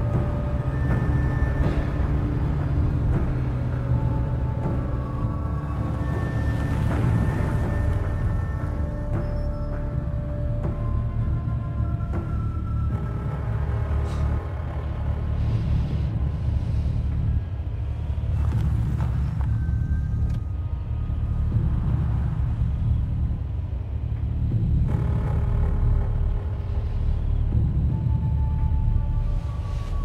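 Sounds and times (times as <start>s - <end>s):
car engine rumble: 0.0s - 30.0s
dark music of held tones: 0.0s - 30.0s
road noise: 0.0s - 30.0s.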